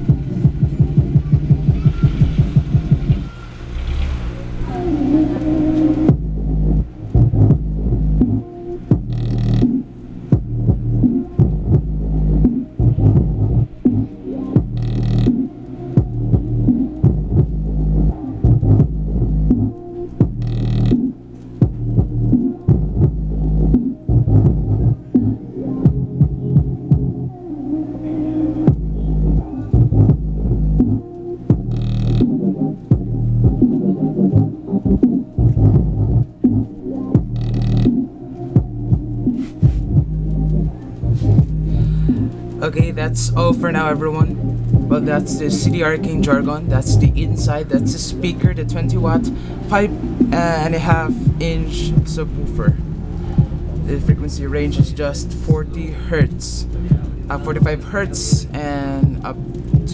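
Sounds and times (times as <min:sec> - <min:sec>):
electronic dance music: 0:00.0 - 0:03.4, 0:28.8 - 0:59.9
punchy kick-drum hits: 0:00.1 - 0:03.2.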